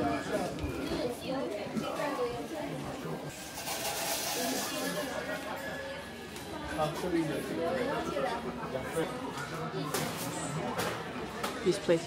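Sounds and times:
people chattering indoors: 0:00.0 - 0:12.0.

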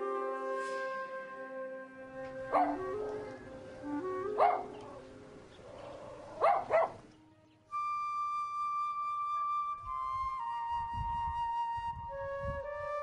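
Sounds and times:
background music with held notes: 0:00.0 - 0:13.0
small dog barking: 0:02.5 - 0:03.3, 0:04.4 - 0:04.8, 0:05.7 - 0:07.0.

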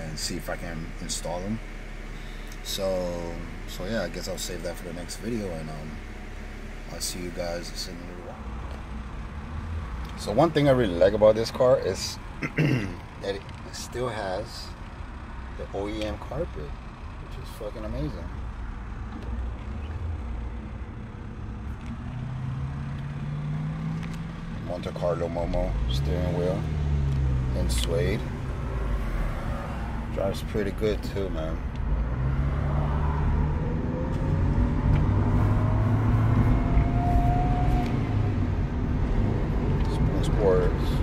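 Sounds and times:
car engine and road rumble: 0:00.0 - 0:41.0.

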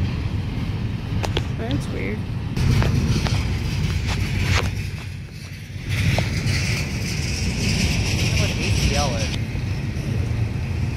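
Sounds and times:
train cars clicking and clanking: 0:00.0 - 0:10.8
train rumbling past: 0:00.0 - 0:10.9.

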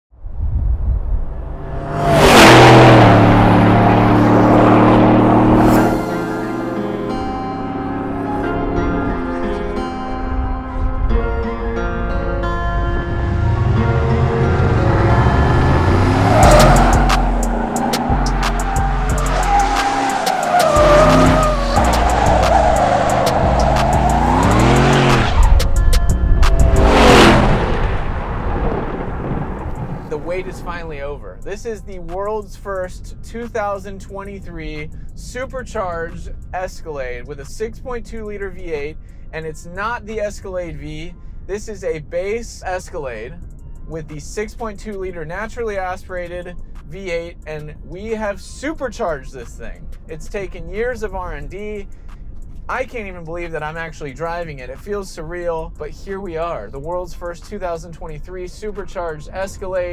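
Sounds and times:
low rumble: 0:00.2 - 0:20.2, 0:20.8 - 0:31.6
held low drone: 0:00.5 - 0:31.0
whoosh sweeping down in pitch: 0:00.6 - 0:09.5, 0:12.7 - 0:30.0
engine revving hard: 0:01.4 - 0:09.5, 0:12.8 - 0:30.8
tyres squealing: 0:15.5 - 0:25.5.

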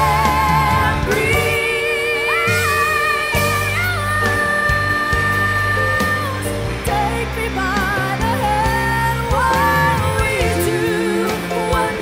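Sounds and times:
pop band with bass and guitar: 0:00.0 - 0:12.0
voice singing with vibrato: 0:00.0 - 0:12.0
woman singing a long high note: 0:00.0 - 0:12.0.

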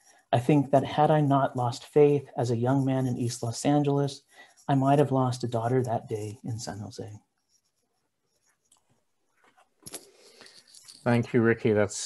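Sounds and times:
faint low noise: 0:09.8 - 0:12.0.

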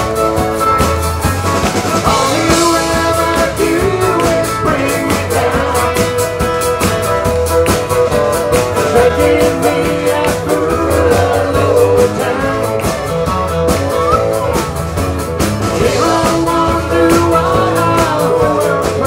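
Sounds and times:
live country band playing: 0:00.0 - 0:19.0.

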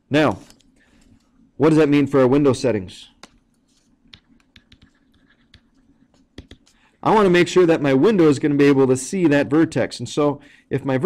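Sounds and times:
stylus tapping and scratching on screen: 0:03.2 - 0:07.6.

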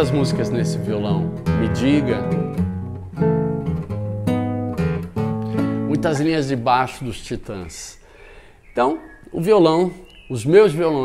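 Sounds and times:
fingerpicked classical guitar: 0:00.0 - 0:06.7.

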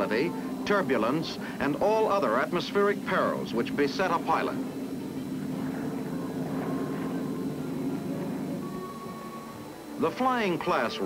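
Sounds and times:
aircraft engines humming: 0:00.0 - 0:11.0.

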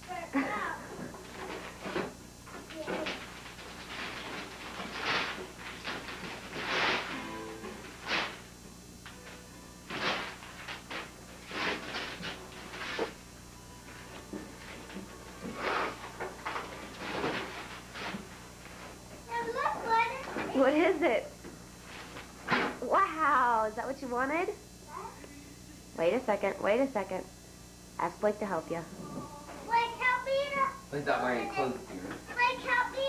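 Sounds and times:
wrapping paper tearing: 0:02.9 - 0:07.2, 0:09.9 - 0:13.2.

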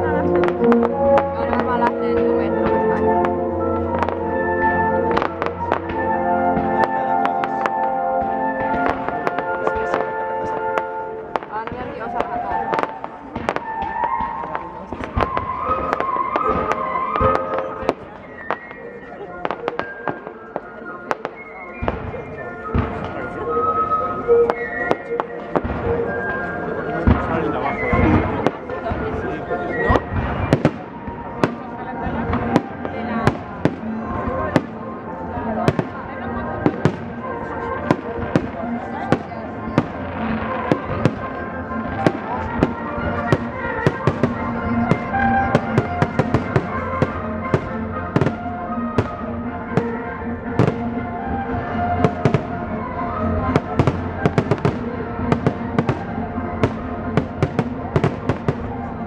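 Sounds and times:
music: 0:00.0 - 0:59.0.

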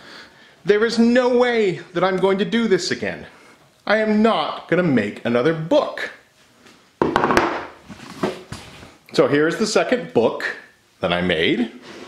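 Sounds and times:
book knocking on wooden bench: 0:07.0 - 0:07.7.

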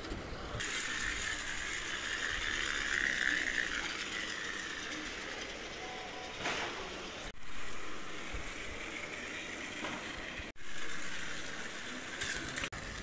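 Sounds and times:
toy truck gears whining: 0:00.0 - 0:13.0.

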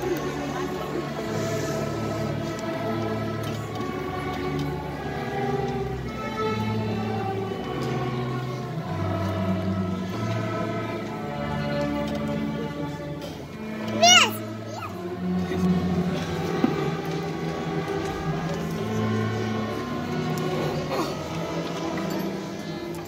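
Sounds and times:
string orchestra playing held notes: 0:00.0 - 0:23.0.

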